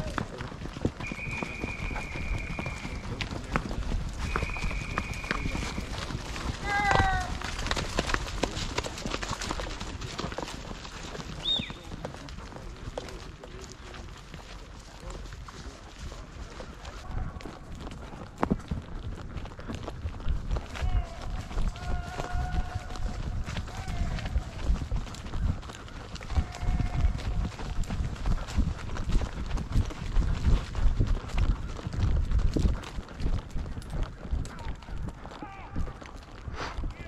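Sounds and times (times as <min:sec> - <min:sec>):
horse hoofbeats: 0:00.0 - 0:37.0.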